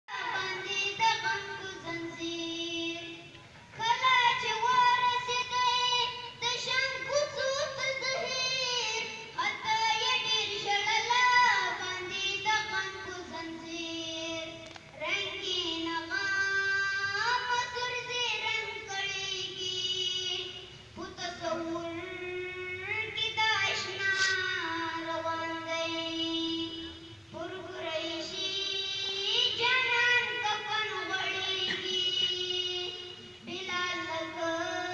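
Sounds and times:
boy singing into a microphone: 0.1 - 34.9.

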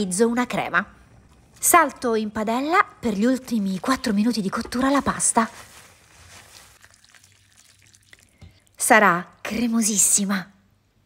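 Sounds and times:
wet stirring of pasta in a pan: 3.2 - 8.8.

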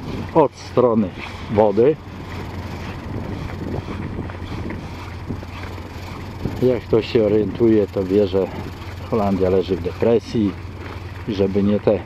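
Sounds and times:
wind on microphone: 0.0 - 11.4
constant low hum: 0.0 - 12.0
faint footsteps on pavement: 0.0 - 12.0.

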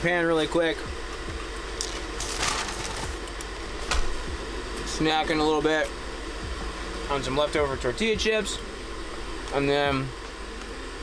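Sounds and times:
hum and hiss of heating water: 0.0 - 11.0
paper bag crinkling: 1.8 - 3.3.

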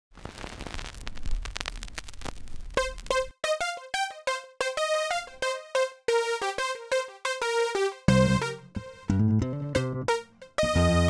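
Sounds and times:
crackling static with clicks: 0.1 - 3.4.

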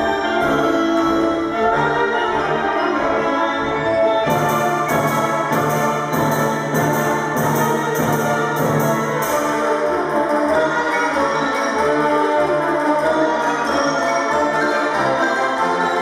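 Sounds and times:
marimbas: 0.0 - 16.0
school wind band playing: 0.0 - 16.0
sharp percussion strikes: 4.2 - 11.3.

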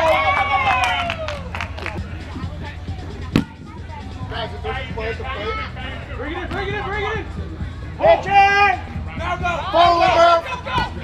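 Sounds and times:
sharp thump: 3.3 - 3.6.

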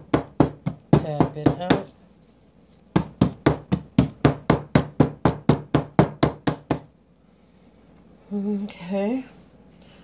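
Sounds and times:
soap mold knocking on stone: 0.0 - 1.9, 2.9 - 6.9.

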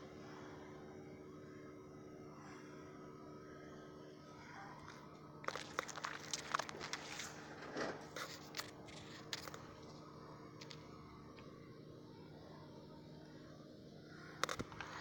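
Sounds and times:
faint steady hum: 0.0 - 15.0
close rustling and crunching: 4.6 - 10.9
sharp crackles: 5.4 - 9.9.

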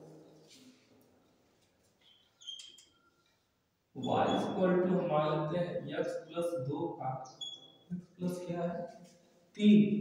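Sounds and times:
marker squeaking on whiteboard: 2.0 - 4.6, 7.2 - 8.2.

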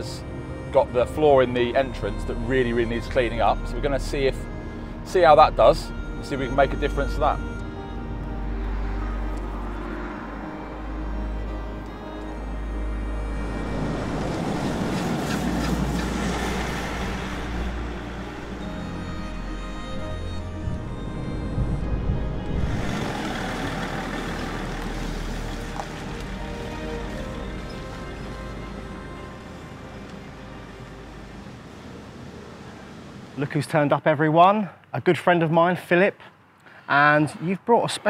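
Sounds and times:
background music: 0.0 - 33.1
car driving past: 8.0 - 19.0, 20.7 - 33.4.

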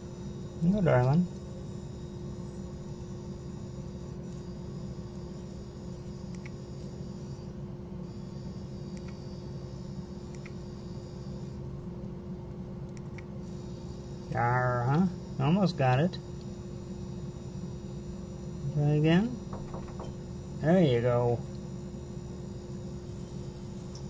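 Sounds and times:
low electrical hum: 0.0 - 24.0
faint ticks: 6.3 - 6.9.

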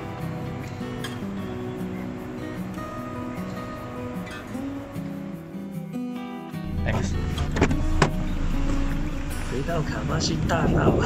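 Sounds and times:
car engine rumbling: 6.6 - 11.0
car door latch clicks: 7.4 - 8.2.

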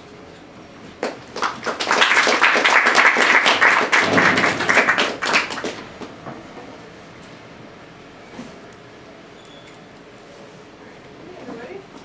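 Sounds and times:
audience applauding: 1.0 - 6.2.

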